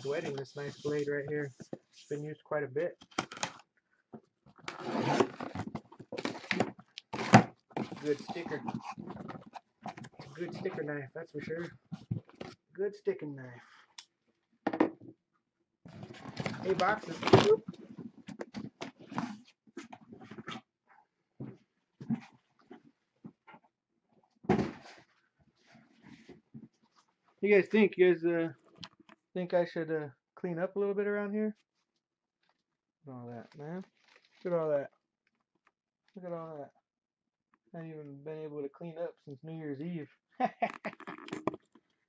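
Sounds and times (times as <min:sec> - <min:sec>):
plastic wrap rustling: 0:04.6 - 0:09.3, 0:16.1 - 0:17.6, 0:33.9 - 0:34.5
box scraping: 0:04.7 - 0:10.8.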